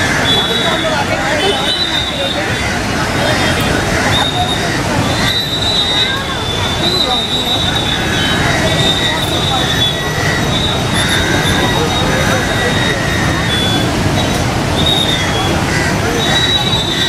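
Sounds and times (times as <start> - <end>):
crowd voices: 0.0 - 17.0
river rushing roar: 0.0 - 17.0
high whistling tones: 4.2 - 15.6, 16.2 - 17.0.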